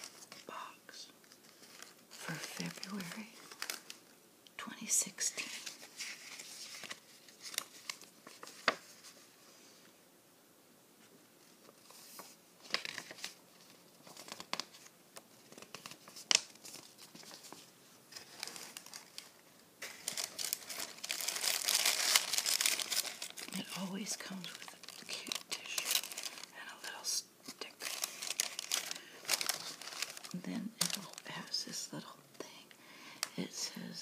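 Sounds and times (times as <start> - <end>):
tissue paper rustling and crinkling: 0.0 - 0.6, 1.2 - 4.1, 5.3 - 9.9, 11.4 - 32.0.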